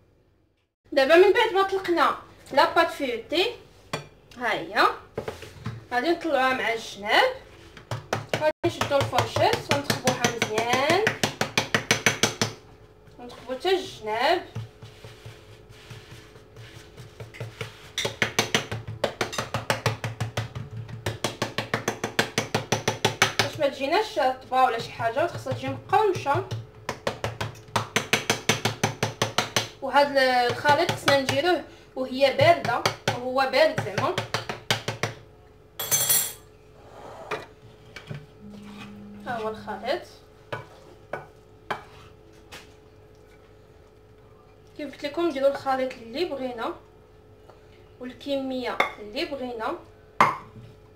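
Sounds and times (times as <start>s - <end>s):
faint low hum: 38.1s - 40.8s.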